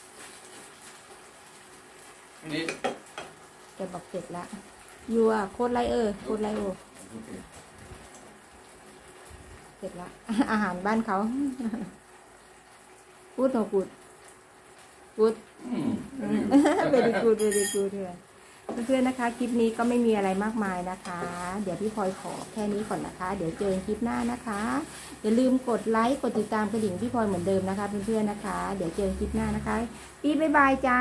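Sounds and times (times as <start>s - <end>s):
man speaking a word: 2.4s - 2.8s, 7.0s - 7.5s.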